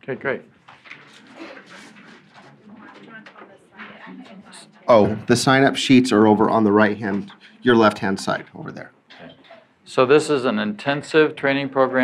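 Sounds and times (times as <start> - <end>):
low room murmur: 0.0 - 12.0.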